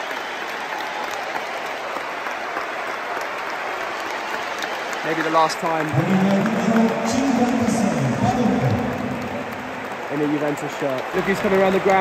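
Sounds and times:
stadium crowd applauding: 0.0 - 12.0.

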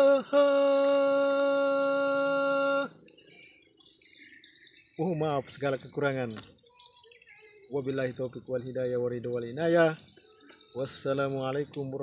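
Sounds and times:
man singing a long note: 0.0 - 3.0
faint background sounds: 0.0 - 12.0.

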